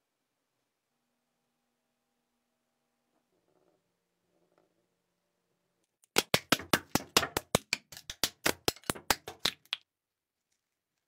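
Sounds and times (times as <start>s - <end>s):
sharp hard taps: 6.2s - 9.8s.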